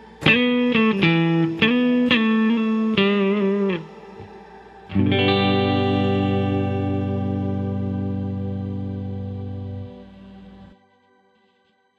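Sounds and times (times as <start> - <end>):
electric guitar chord ringing: 0.0 - 10.8.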